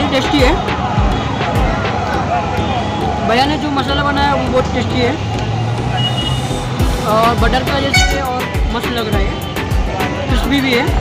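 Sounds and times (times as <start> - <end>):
music playing: 0.0 - 11.0
traffic engine hum: 0.0 - 11.0.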